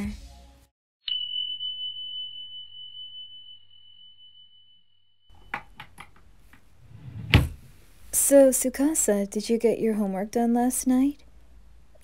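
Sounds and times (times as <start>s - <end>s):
high chime ringing: 1.0s - 5.8s
faint room noise: 5.3s - 12.0s.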